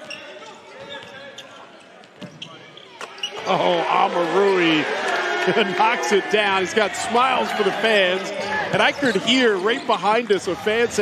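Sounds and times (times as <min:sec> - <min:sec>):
shoe squeaks: 0:00.0 - 0:03.5, 0:08.4 - 0:10.1
murmur of crowd voices: 0:00.0 - 0:11.0.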